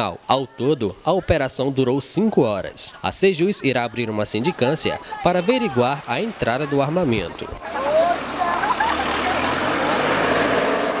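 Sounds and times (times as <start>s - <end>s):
crowd talking and calling out: 0.0s - 11.0s
pickup truck engine pulling away: 7.6s - 11.0s.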